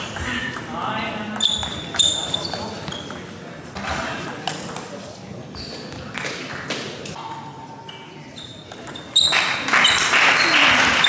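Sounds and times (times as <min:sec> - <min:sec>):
loud applause: 0:09.3 - 0:11.0.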